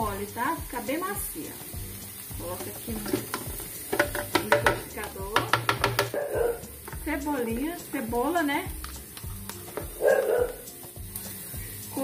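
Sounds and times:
background music: 0.0 - 12.0
dog barking: 6.1 - 6.6, 10.0 - 10.7.

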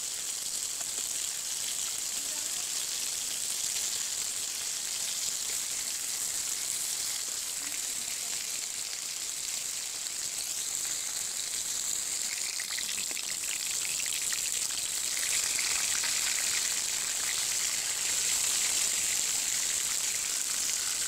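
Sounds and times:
fish sizzling in hot oil: 0.0 - 21.0.

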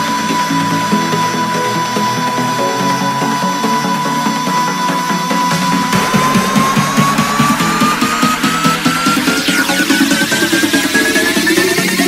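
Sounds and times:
steady high tone: 0.0 - 12.0
synth melody: 0.0 - 12.0.

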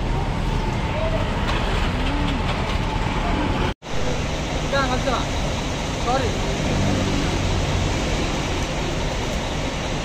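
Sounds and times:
low rumbling street noise: 0.0 - 10.0.

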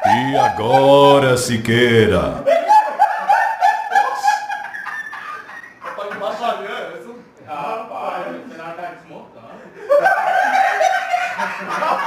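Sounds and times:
man chuckling: 0.0 - 2.5.

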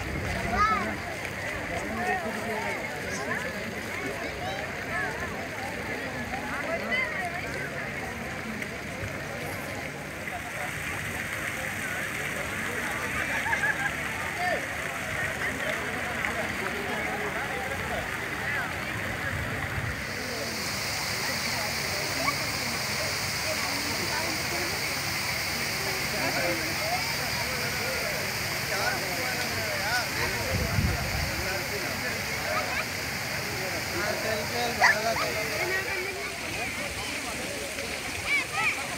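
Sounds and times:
fountain water splashing: 0.0 - 38.9
people chattering: 0.0 - 38.9.

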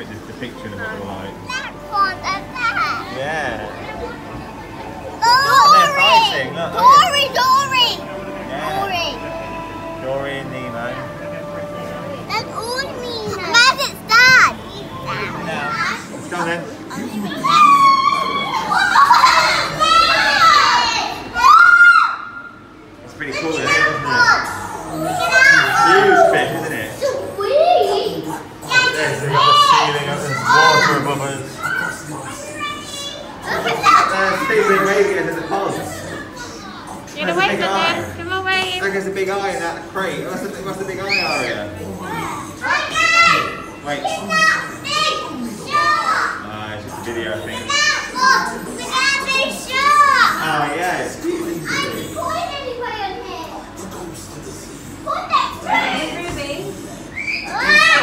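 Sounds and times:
young children calling and chattering: 0.0 - 10.0, 10.7 - 58.0
murmur of people talking: 0.0 - 58.0.

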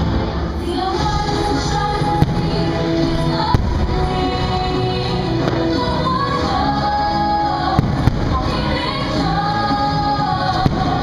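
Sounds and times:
loud music with singing: 0.0 - 11.0
fireworks bangs: 1.0 - 6.6, 7.7 - 9.2, 10.6 - 11.0.

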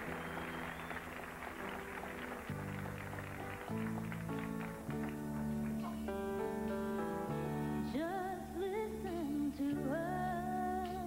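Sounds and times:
slow piano ballad chords: 0.0 - 11.0.

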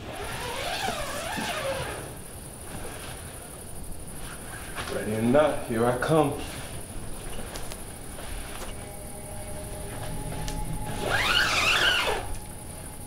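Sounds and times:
low held music tones: 5.0 - 13.0
high rising and falling squeal: 8.7 - 13.0.

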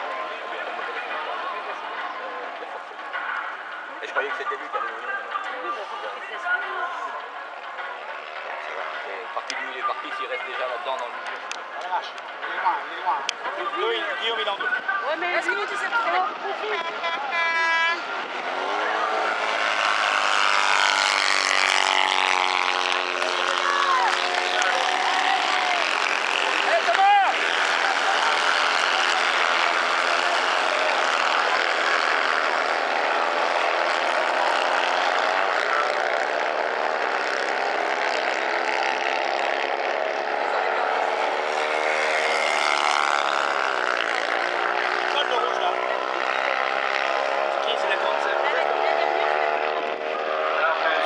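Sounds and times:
racing buggy engines revving: 0.0 - 51.0.

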